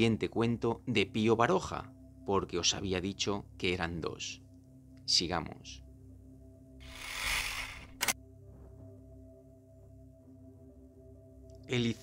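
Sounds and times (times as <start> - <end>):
ambient music drone: 0.0 - 12.0
sharp click: 7.8 - 8.2.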